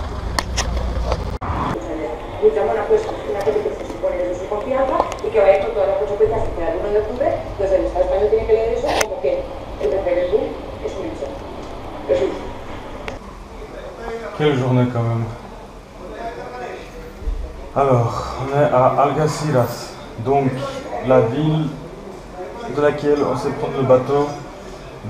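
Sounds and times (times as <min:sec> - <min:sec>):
low traffic rumble: 0:00.0 - 0:25.0
people talking: 0:01.7 - 0:12.6.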